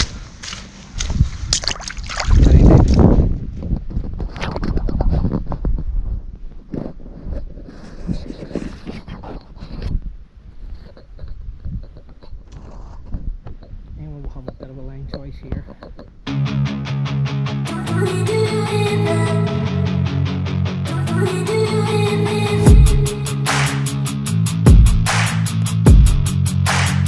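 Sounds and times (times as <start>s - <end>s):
footsteps squelching through mud: 0.0s - 3.2s
loud low microphone rumble: 22.7s - 23.4s.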